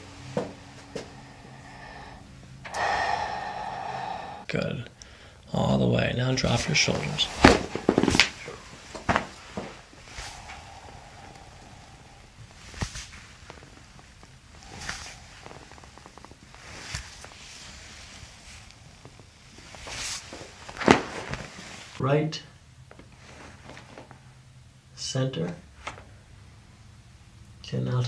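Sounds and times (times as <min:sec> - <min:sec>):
soft breathy sounds: 0:00.0 - 0:22.0
spinal joints cracking: 0:06.5 - 0:17.4.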